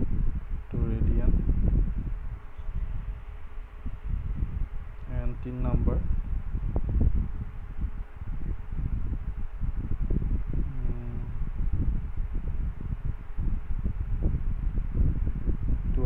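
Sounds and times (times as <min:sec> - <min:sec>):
faint voice: 0:10.7 - 0:11.3.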